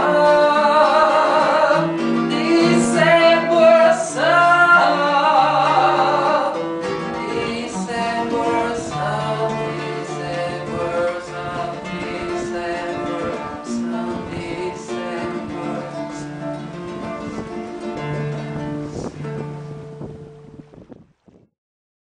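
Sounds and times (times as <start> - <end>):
classical guitar playing: 0.0 - 21.4.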